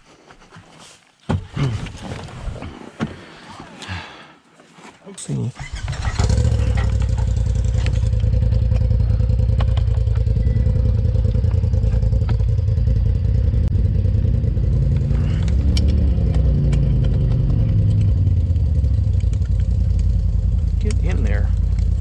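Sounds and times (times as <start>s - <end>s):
engine running at low speed: 5.6s - 22.0s.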